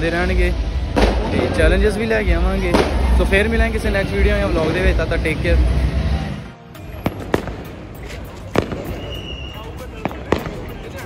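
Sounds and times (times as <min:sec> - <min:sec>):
steady background din: 0:00.0 - 0:11.0
fireworks bangs: 0:00.6 - 0:03.7, 0:06.9 - 0:11.0.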